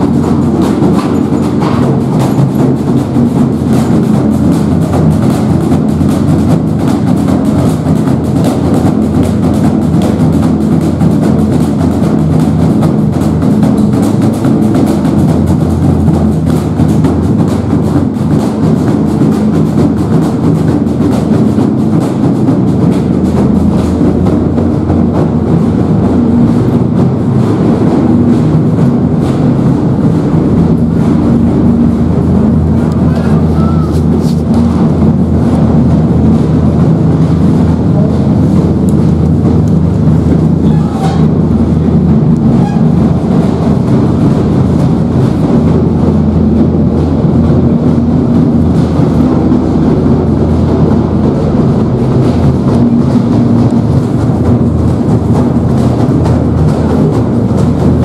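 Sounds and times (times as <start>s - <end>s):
drums beating: 0.0s - 58.0s
voices: 32.8s - 34.5s, 40.6s - 41.4s.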